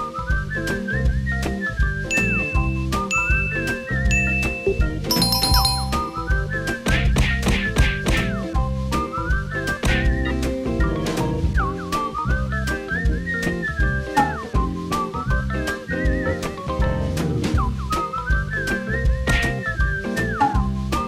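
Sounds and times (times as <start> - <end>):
whistled melody: 0.0 - 16.8, 17.4 - 21.0.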